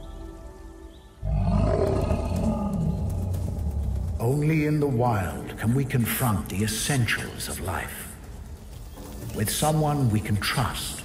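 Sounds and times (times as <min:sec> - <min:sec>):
soft music: 0:00.0 - 0:01.7
bear roaring: 0:01.2 - 0:03.9.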